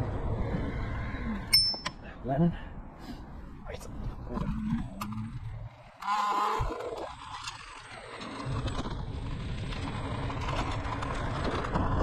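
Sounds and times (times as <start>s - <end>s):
wheels on road: 0.0s - 2.2s, 3.8s - 12.0s
scooter engine rumble: 4.6s - 12.0s.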